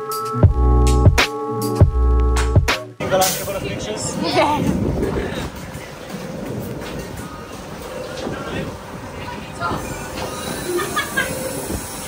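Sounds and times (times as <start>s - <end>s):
faint voices: 3.0s - 12.0s.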